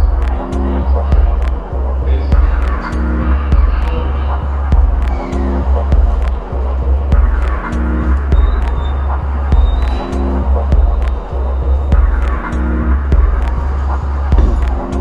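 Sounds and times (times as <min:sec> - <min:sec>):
deep bassline: 0:00.0 - 0:15.0
clicking percussion: 0:09.5 - 0:15.0.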